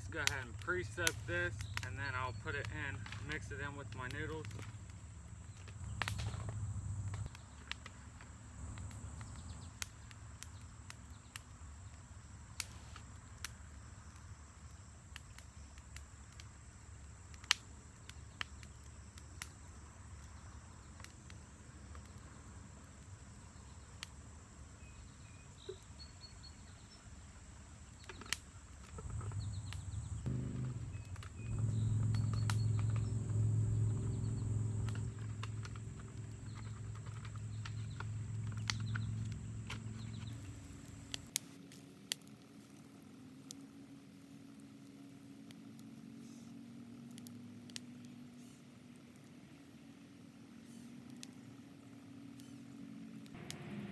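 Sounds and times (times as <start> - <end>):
campfire crackling and popping: 0.0 - 53.9
faint outdoor background: 0.0 - 53.9
low steady hum: 28.9 - 41.3, 47.4 - 53.9.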